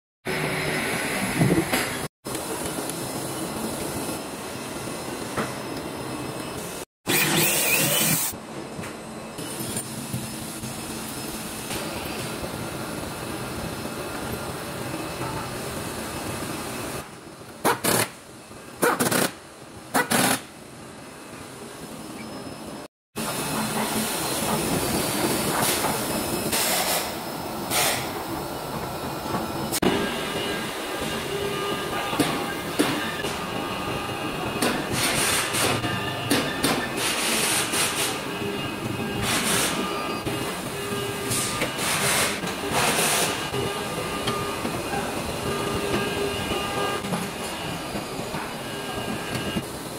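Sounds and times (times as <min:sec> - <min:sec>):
workshop machinery noise: 0:00.2 - 0:49.9.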